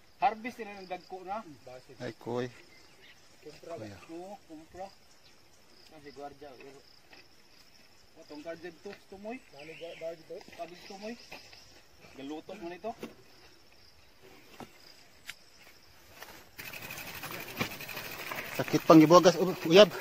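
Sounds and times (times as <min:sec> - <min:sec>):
crickets chirping: 0:00.0 - 0:20.0
steady outdoor hiss: 0:00.0 - 0:20.0
people talking: 0:18.6 - 0:20.0.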